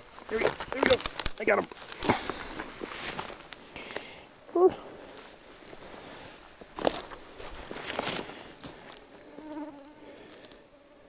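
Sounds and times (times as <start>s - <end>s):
insect buzzing: 8.7s - 11.0s.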